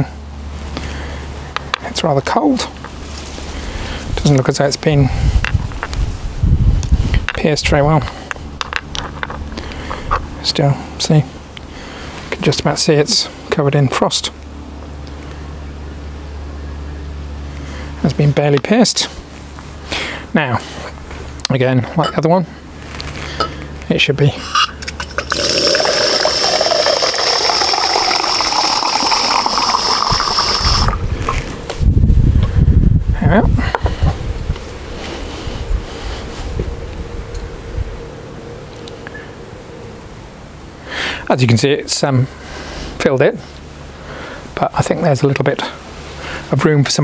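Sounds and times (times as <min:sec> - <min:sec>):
soda syphon hissing spray: 0:24.4 - 0:31.0.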